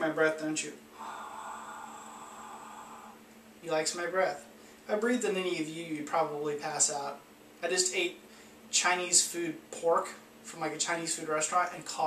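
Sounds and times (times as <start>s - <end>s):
man exhaling: 0.9s - 3.2s.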